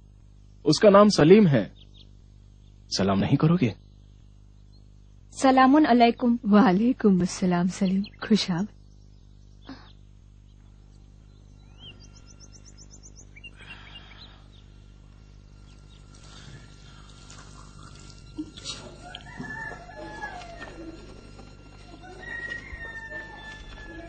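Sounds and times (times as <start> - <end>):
chickens clucking: 15.6 - 24.0
rooster crowing: 16.2 - 24.0.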